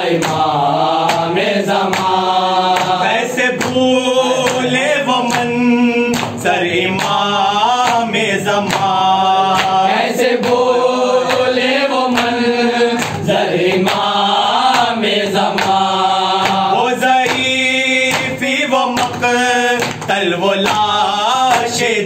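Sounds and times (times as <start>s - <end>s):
men chanting in unison: 0.0s - 22.0s
person reciting: 0.0s - 22.0s
hands slapping chests: 0.1s - 21.8s.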